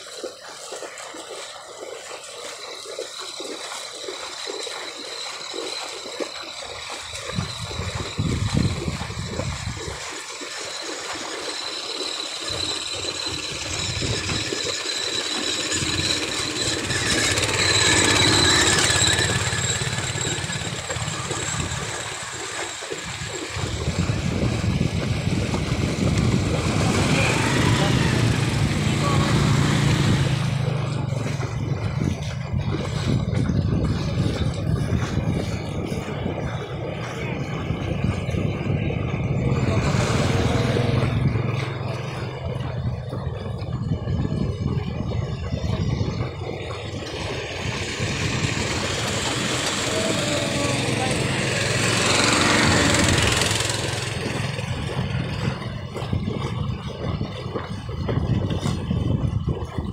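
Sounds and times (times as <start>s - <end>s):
motorcycle engine running: 15.4s - 59.9s.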